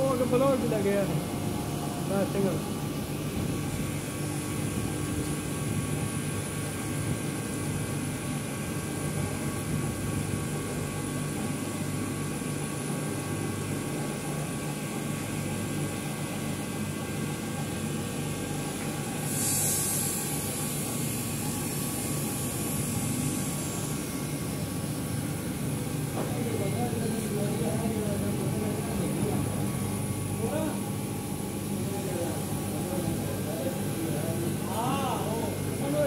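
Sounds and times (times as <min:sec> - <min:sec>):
laser engraver humming: 0:00.0 - 0:36.0
hiss burst: 0:19.2 - 0:20.7.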